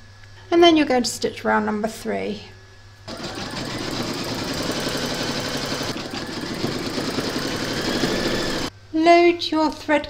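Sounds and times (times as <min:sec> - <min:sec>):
embroidery machine stitching: 0:03.1 - 0:08.7.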